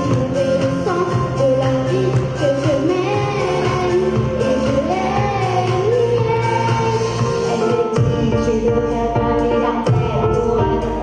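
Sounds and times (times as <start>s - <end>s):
girl singing into microphone: 0.0s - 11.0s
karaoke backing track: 0.0s - 11.0s.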